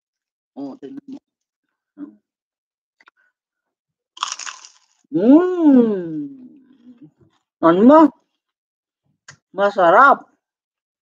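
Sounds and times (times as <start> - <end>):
crunchy bite into crisp wrapper: 4.2 - 5.1.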